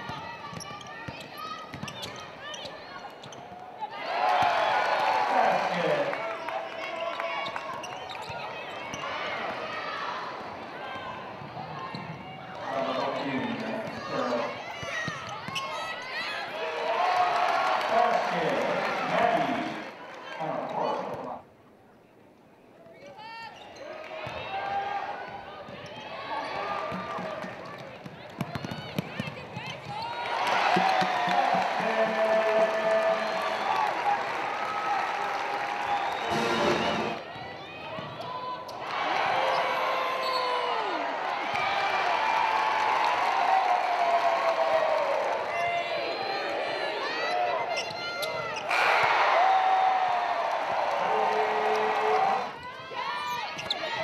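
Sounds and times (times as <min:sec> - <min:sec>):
sneakers squeaking: 0:00.0 - 0:03.8, 0:06.9 - 0:09.6, 0:11.6 - 0:16.2, 0:36.1 - 0:40.8, 0:47.3 - 0:48.8, 0:52.6 - 0:54.0
crowd voices and shouting: 0:00.0 - 0:21.5, 0:22.8 - 0:54.0
players calling out: 0:24.3 - 0:43.0
basketball bouncing: 0:26.9 - 0:31.8.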